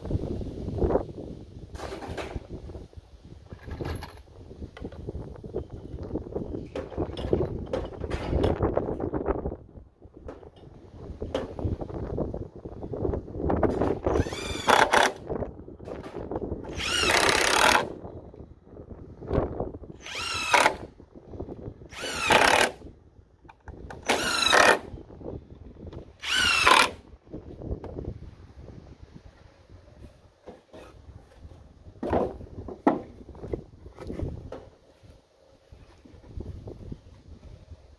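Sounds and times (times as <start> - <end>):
cordless driver whirring: 14.1 - 15.2, 16.7 - 17.9, 20.0 - 20.9, 21.9 - 22.8, 24.0 - 24.9, 26.2 - 27.0.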